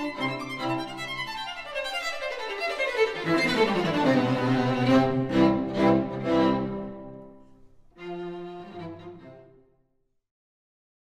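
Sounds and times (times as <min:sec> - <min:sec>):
string quartet playing: 0:00.0 - 0:09.6.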